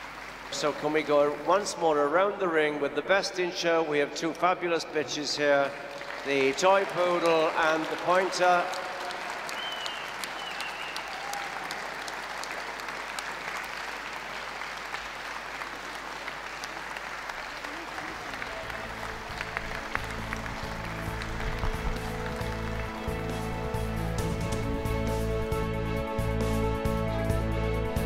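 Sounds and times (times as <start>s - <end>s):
audience applauding: 0.0s - 1.7s, 5.4s - 25.7s
music with bass line: 19.2s - 28.0s.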